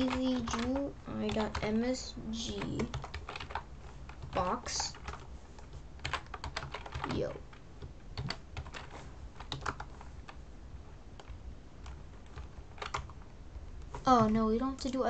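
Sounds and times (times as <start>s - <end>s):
computer keyboard keystrokes: 0.0s - 10.1s, 11.2s - 13.2s.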